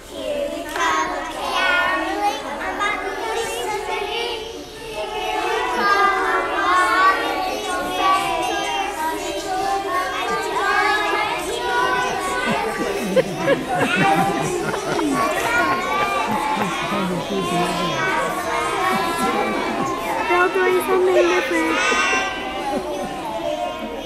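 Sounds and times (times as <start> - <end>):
young children singing: 0.0 - 24.0.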